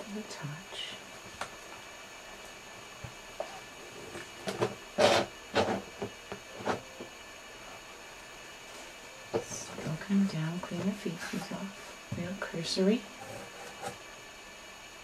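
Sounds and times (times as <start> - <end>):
faint electrical hum: 0.0 - 15.0.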